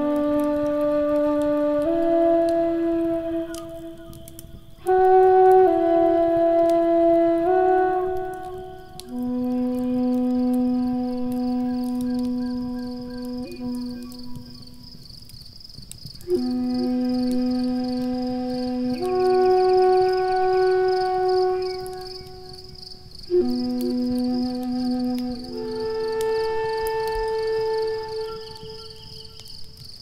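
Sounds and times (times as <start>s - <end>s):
flute playing long low notes: 0.0s - 15.0s, 16.2s - 30.0s
wood fire crackling: 0.0s - 30.0s.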